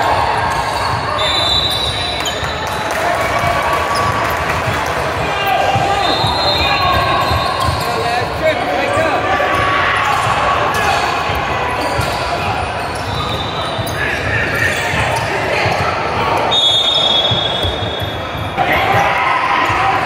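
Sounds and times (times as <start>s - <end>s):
sneaker squeaks: 0.1s - 18.6s
ball bouncing on hardwood court: 9.5s - 12.4s.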